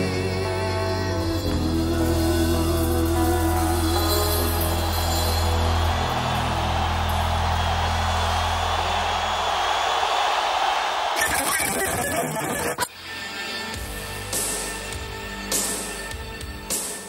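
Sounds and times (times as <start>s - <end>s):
stadium crowd cheering: 4.2s - 12.9s.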